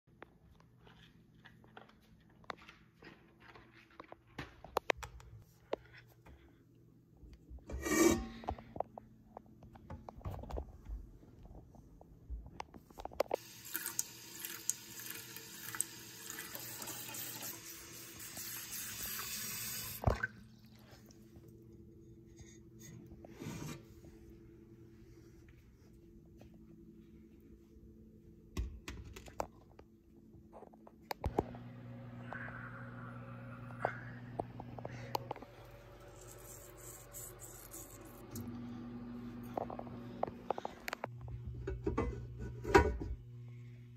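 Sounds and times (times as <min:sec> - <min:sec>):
tap water running into pot: 0:13.4 - 0:20.3.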